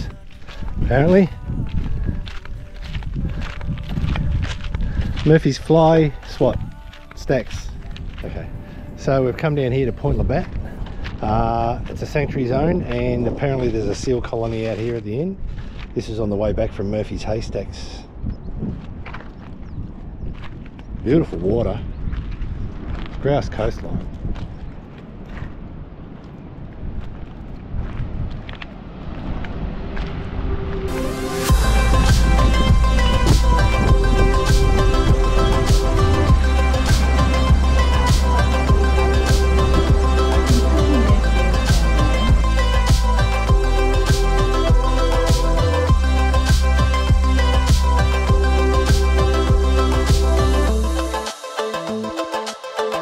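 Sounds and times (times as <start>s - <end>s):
music: 0.0s - 14.9s, 30.9s - 53.0s
footsteps on gravel path: 0.0s - 17.0s, 18.1s - 43.7s
wind rumbling on microphone: 0.0s - 51.2s.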